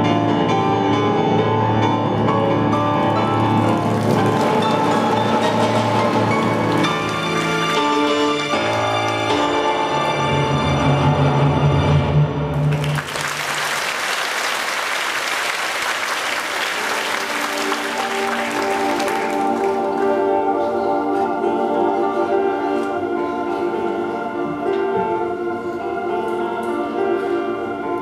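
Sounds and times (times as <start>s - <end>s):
orchestral music: 0.0s - 28.0s
audience applause: 3.1s - 9.2s, 12.5s - 20.3s.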